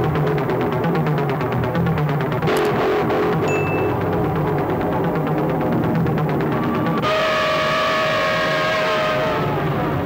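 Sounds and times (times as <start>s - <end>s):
sustained synthesizer chord: 0.0s - 10.0s.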